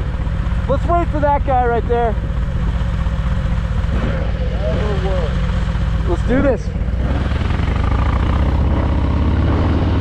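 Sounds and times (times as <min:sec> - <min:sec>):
motorcycle engines idling: 0:00.0 - 0:10.0.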